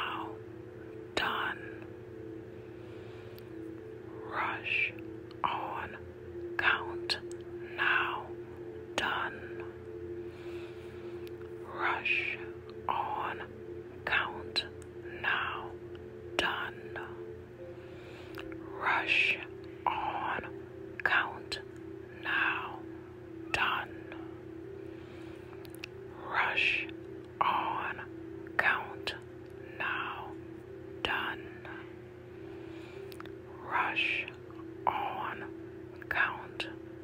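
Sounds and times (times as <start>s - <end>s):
person whispering a chant: 0.0s - 0.4s, 1.1s - 1.9s, 4.1s - 9.9s, 11.2s - 17.3s, 18.4s - 24.4s, 25.6s - 32.0s, 33.1s - 36.9s
steady droning tone: 0.0s - 37.0s.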